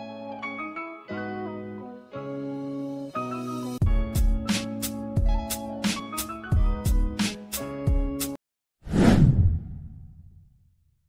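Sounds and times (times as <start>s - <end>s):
background music: 0.0s - 8.4s.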